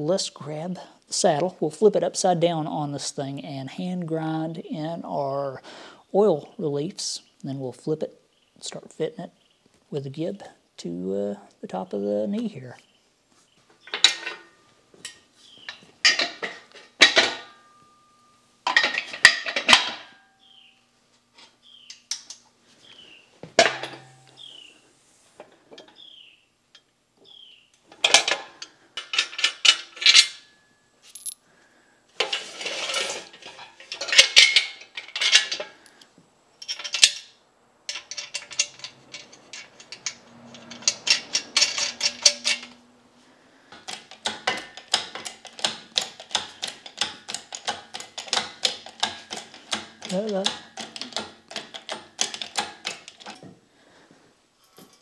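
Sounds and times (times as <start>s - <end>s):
chain clinking: 31.0s - 31.4s, 36.6s - 42.8s, 54.6s - 55.0s
metal clanking: 37.9s - 42.8s.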